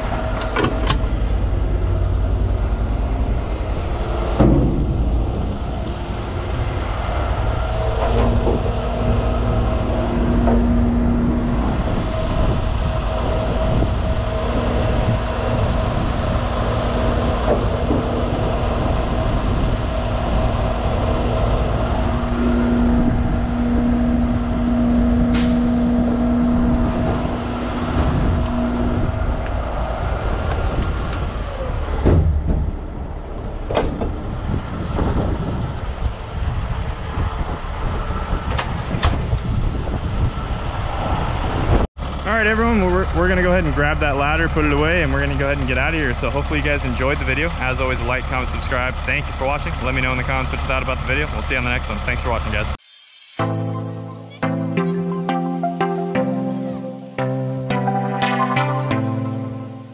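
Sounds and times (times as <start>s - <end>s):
steady hum: 0.0s - 30.9s
diesel engine rumbling: 0.0s - 52.8s.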